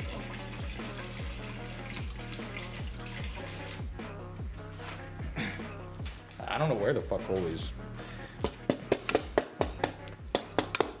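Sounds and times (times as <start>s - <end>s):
background music with drums and bass: 0.0s - 11.0s.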